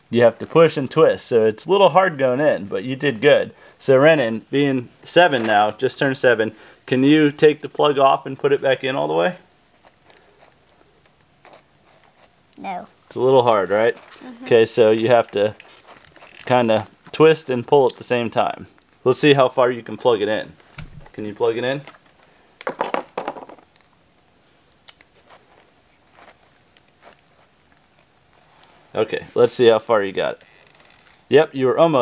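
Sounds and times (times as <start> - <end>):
rustling: 13.7 - 17.2, 23.3 - 29.6, 30.2 - 31.3.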